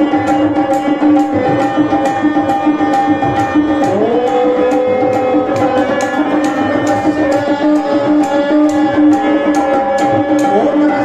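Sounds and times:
harmonium held notes: 0:00.0 - 0:11.0
tabla rhythm: 0:00.0 - 0:11.0.

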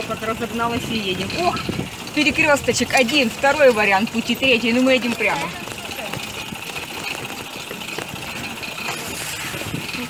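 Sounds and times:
pedal bike rolling on pavement: 0:00.0 - 0:10.0.

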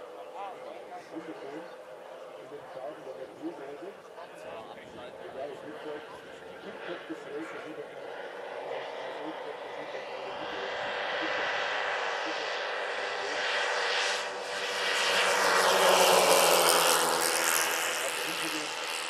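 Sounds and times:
model airplane propellers and motors: 0:00.0 - 0:19.0.

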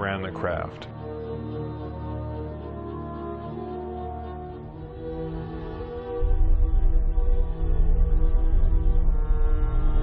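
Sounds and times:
deep horn-like drone: 0:04.6 - 0:10.0.

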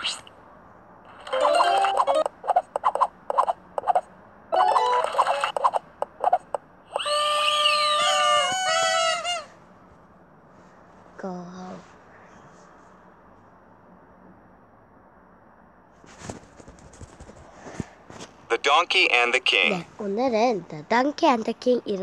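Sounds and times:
tiles popping clicks: 0:01.1 - 0:04.0, 0:04.6 - 0:06.6.

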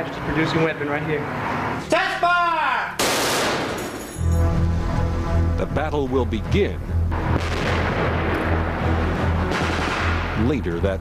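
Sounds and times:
machine gun burst: 0:03.0 - 0:04.1.

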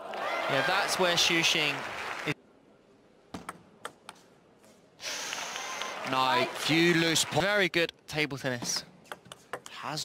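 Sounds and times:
audience applause: 0:00.0 - 0:02.4, 0:05.1 - 0:07.5.

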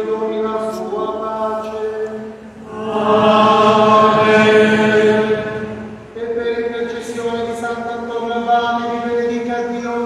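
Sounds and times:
voices singing a chant: 0:00.0 - 0:06.3.

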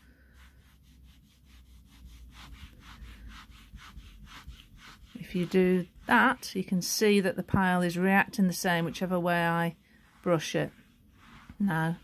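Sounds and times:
hand brushing velvet: 0:00.0 - 0:12.0.

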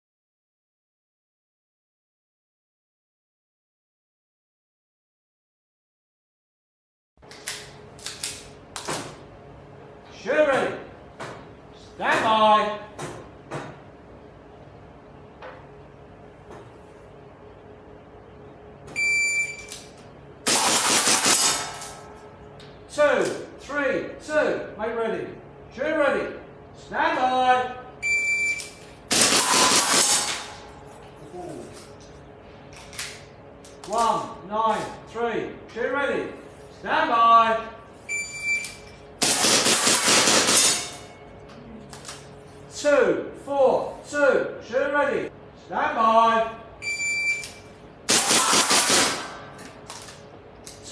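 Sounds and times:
shot timer beep: 0:19.0 - 0:19.7, 0:28.0 - 0:28.8, 0:38.1 - 0:38.9, 0:46.8 - 0:47.7
airsoft pistol shots: 0:20.4 - 0:22.0, 0:29.1 - 0:30.6, 0:39.2 - 0:41.0, 0:48.1 - 0:49.5.

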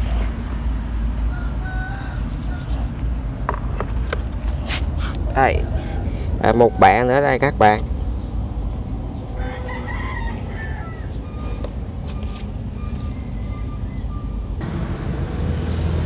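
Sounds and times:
steady low rumble: 0:00.0 - 0:16.0
rooster crowing faintly: 0:01.2 - 0:03.0, 0:05.4 - 0:07.1, 0:09.2 - 0:11.6.

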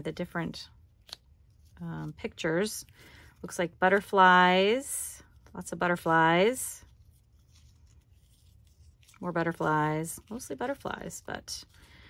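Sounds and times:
paper stickers rustling: 0:05.3 - 0:12.0.

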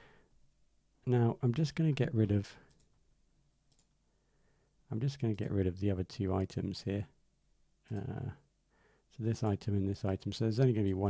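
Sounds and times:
faint mouse clicks: 0:02.5 - 0:03.0, 0:03.7 - 0:04.0.

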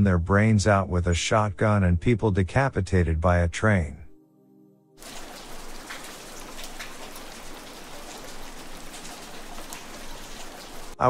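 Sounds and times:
rain patter and hiss: 0:05.0 - 0:11.0.

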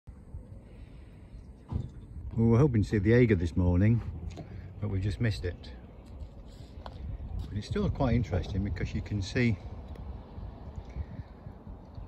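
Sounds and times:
faint low rumble: 0:00.1 - 0:12.0.

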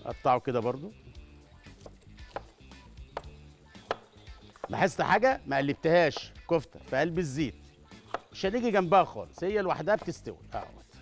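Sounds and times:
soft background music: 0:00.0 - 0:11.0
knife cutting pepper on board: 0:01.7 - 0:04.9, 0:06.1 - 0:06.4, 0:07.9 - 0:10.9.

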